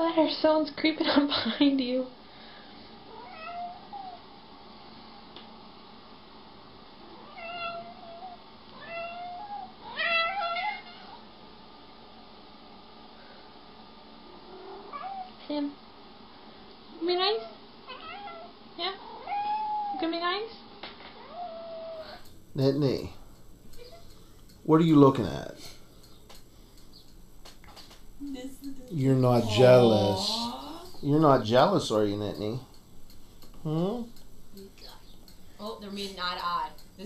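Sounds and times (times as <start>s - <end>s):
cat meowing: 3.1s - 4.2s, 7.1s - 11.2s, 14.6s - 15.3s, 17.4s - 20.0s.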